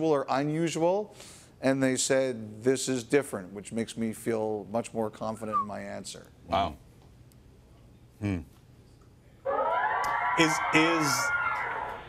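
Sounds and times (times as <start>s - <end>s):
man speaking: 4.8s - 6.8s.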